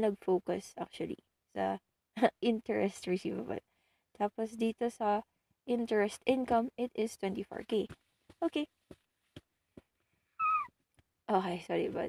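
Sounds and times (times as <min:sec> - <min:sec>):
cat meowing: 0:10.4 - 0:10.7.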